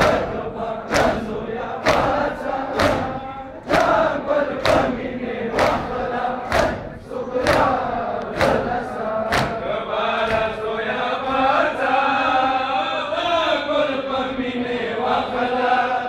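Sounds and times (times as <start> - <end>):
men slapping chests in unison: 0.0 - 11.7
men chanting a lament: 0.0 - 16.0.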